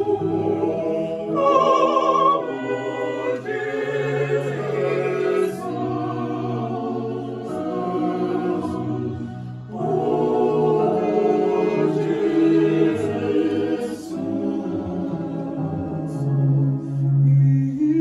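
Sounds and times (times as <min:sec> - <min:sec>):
mixed choir singing a hymn: 0:00.0 - 0:18.0.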